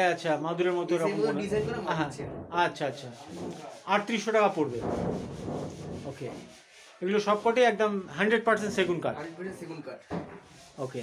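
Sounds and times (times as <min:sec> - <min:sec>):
men talking: 0:00.0 - 0:04.9, 0:07.0 - 0:11.0
sanding on wood: 0:00.5 - 0:01.5, 0:02.8 - 0:09.0, 0:09.6 - 0:11.0.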